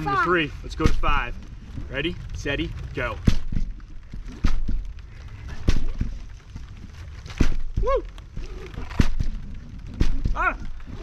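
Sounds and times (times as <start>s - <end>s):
plastic bottles landing on trampoline: 3.2s - 6.3s, 7.1s - 11.0s.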